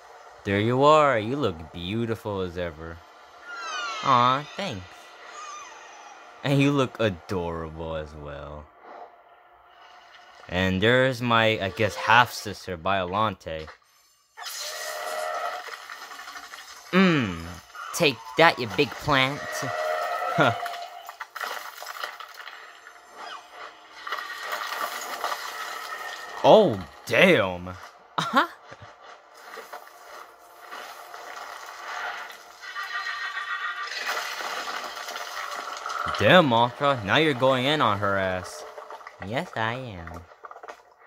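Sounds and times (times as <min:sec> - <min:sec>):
noisy sound effects: 0:00.0 - 0:09.1, 0:33.8 - 0:40.1
warbling monster screech: 0:03.2 - 0:07.2, 0:14.4 - 0:16.0, 0:17.0 - 0:21.2, 0:31.7 - 0:34.8
cartoon monster cry: 0:03.5 - 0:06.5, 0:20.3 - 0:20.7.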